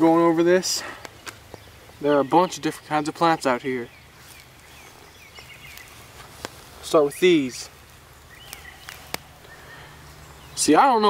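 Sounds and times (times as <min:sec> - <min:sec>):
bird chirping: 0:00.0 - 0:11.0.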